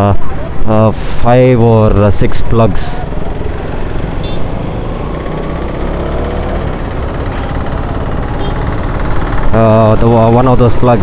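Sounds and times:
motorcycle engine running: 3.0s - 11.0s.

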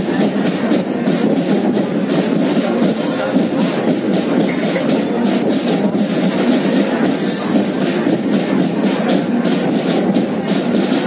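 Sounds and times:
distant marching band: 0.0s - 11.0s
drum and cymbal hits: 0.0s - 11.0s.

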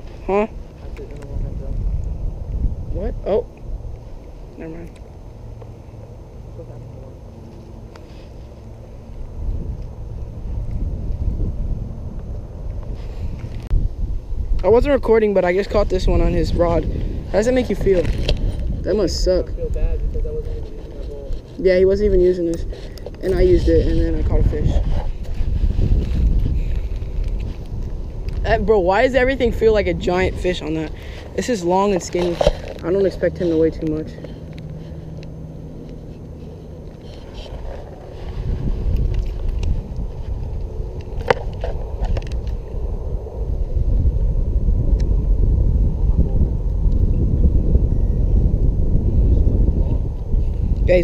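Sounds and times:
wind buffeting microphone: 0.0s - 6.4s, 8.1s - 51.0s.

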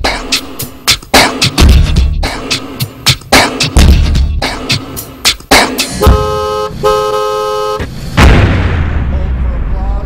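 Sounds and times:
held horn-like chords: 5.9s - 7.9s
deep boom with low rumble: 8.1s - 10.0s.

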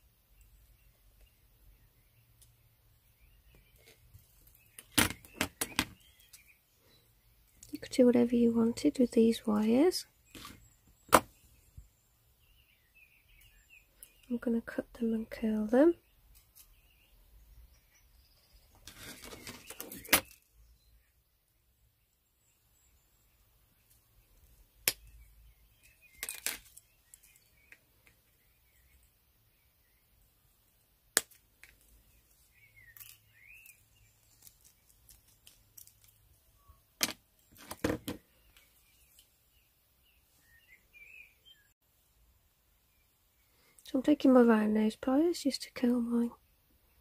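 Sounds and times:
rustling of handled tools: 18.7s - 20.4s, 25.8s - 27.8s.

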